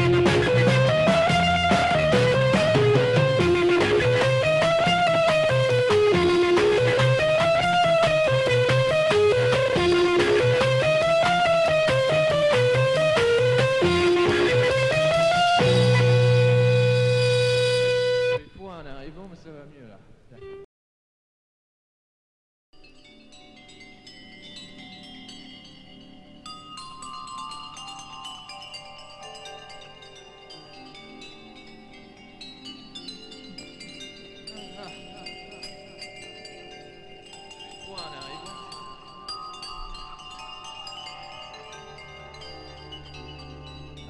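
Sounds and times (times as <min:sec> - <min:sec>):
electric vibraphone notes ringing: 0:22.8 - 0:44.0.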